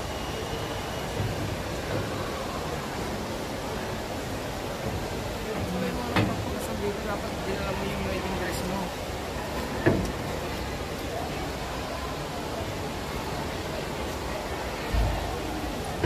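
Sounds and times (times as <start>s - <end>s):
faint voices: 0.0s - 16.0s
indoor waterfall rushing: 0.0s - 16.0s.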